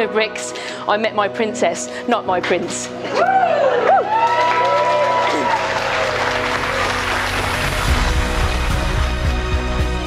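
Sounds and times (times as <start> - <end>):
guests applauding: 3.1 - 9.7
background music with bass beat: 6.8 - 10.0.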